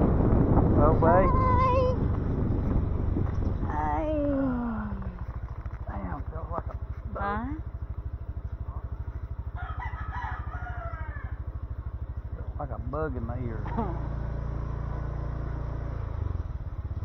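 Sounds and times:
motorcycle engine puttering: 0:00.0 - 0:17.0
rooster crowing: 0:09.5 - 0:11.5.

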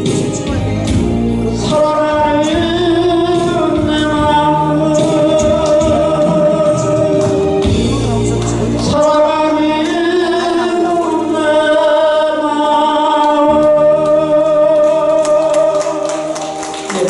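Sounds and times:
amplified instrumental accompaniment: 0:00.0 - 0:17.0
man singing into microphone: 0:00.0 - 0:17.0.

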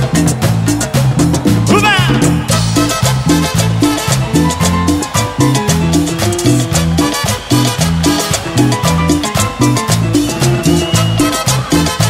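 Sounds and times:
bass line: 0:00.0 - 0:12.0
latin dance band playing: 0:00.0 - 0:12.0
cowbell: 0:02.1 - 0:12.0.

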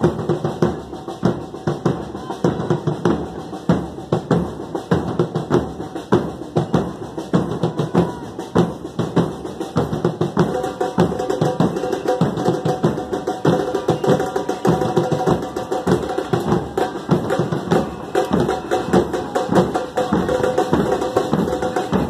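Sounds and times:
bass drums and cymbals beat: 0:00.0 - 0:22.0.

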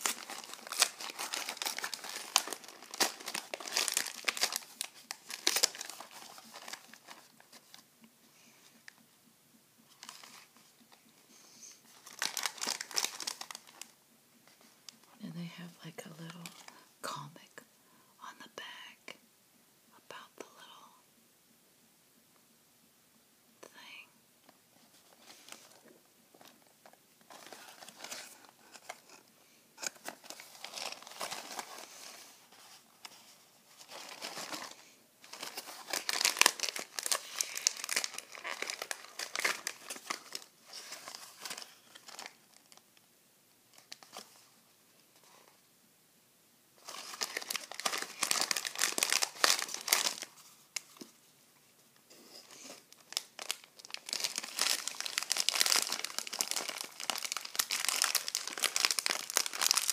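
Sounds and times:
plastic wrapper crinkling and tearing: 0:00.0 - 0:07.8, 0:09.9 - 0:10.5, 0:11.9 - 0:15.0, 0:25.0 - 0:42.8, 0:43.7 - 0:44.5, 0:46.8 - 0:51.2, 0:52.6 - 0:59.9.

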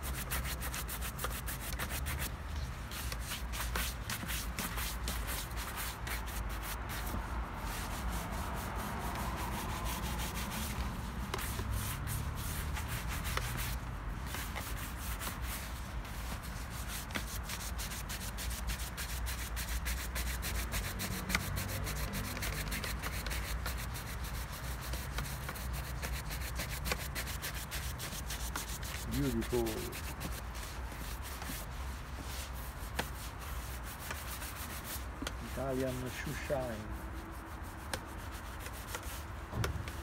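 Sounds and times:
brush buffing leather shoe: 0:00.0 - 0:40.0.

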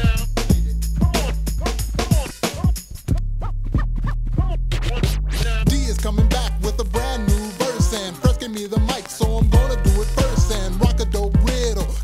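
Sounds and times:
turntable scratching: 0:00.0 - 0:11.9
bass-heavy hip hop beat: 0:00.0 - 0:12.0.

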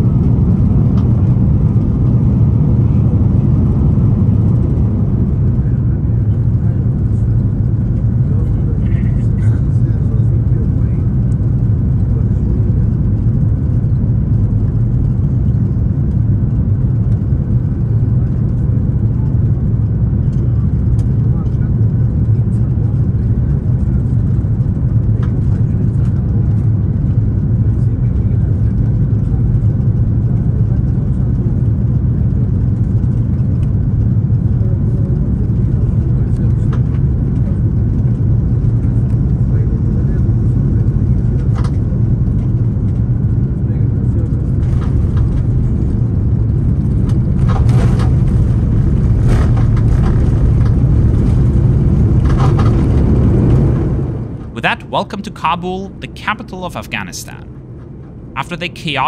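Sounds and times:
aircraft cabin rumble: 0:00.0 - 0:54.6.

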